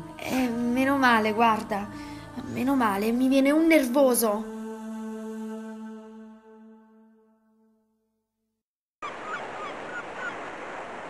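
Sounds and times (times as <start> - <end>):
birds calling: 9.0 - 11.0.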